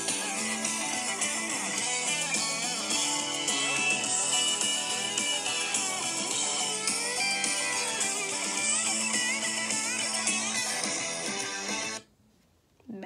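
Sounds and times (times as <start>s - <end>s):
country song with guitars: 0.0s - 12.0s.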